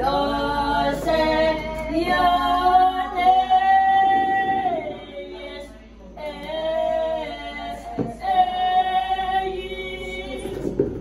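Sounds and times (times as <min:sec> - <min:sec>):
women singing a hymn: 0:00.0 - 0:11.0.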